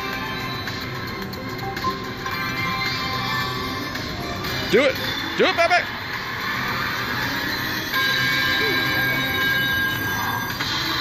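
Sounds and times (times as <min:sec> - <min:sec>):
held cluster of steady tones: 0:00.0 - 0:11.0
slot machine sound effects: 0:00.0 - 0:11.0.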